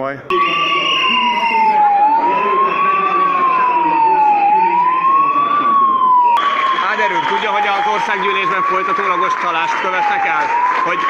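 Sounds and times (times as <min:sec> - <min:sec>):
voices: 0:00.0 - 0:11.0
siren wailing: 0:00.3 - 0:11.0.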